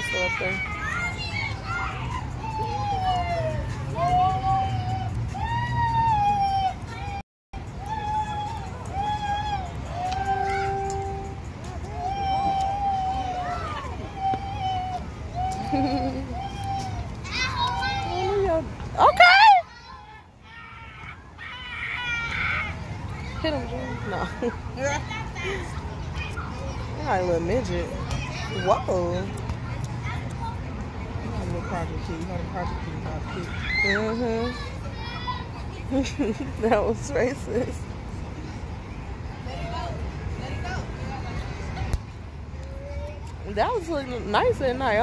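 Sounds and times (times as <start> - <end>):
children playing: 0.0 - 45.0
child calling out in long cries: 7.8 - 18.5
low steady hum: 9.6 - 13.3.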